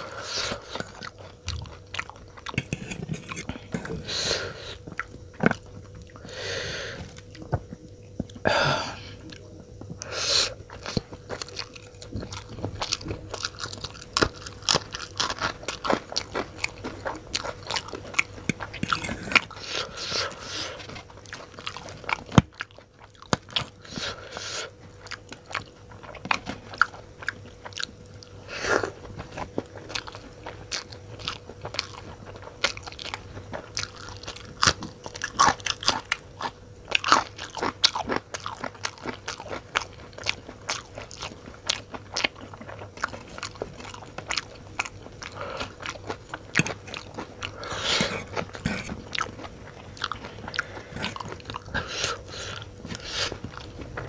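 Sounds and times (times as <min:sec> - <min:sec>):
chewing noodles: 0:00.0 - 0:08.4, 0:09.2 - 0:54.0
crunching bites of chilli: 0:10.7 - 0:54.0.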